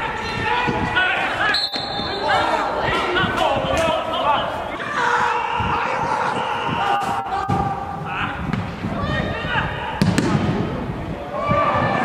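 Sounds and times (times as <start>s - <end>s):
footballers shouting: 0.0s - 12.0s.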